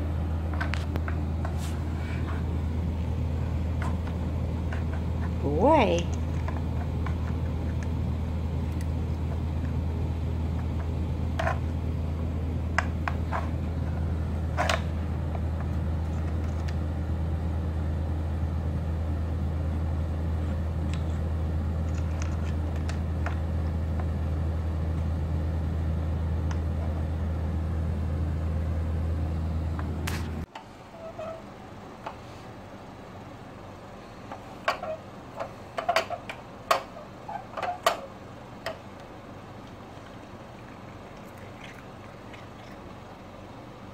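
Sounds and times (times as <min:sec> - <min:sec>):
steady low hum: 0:00.0 - 0:43.9
puzzle feeder clicks and knocks: 0:35.4 - 0:36.9.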